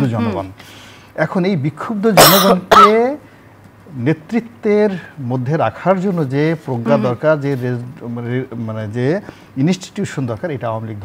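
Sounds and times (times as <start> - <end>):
man clearing his throat: 2.2 - 3.1.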